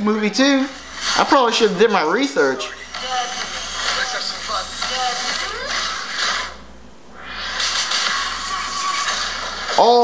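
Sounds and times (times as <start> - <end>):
action sound effects: 2.7 - 9.8.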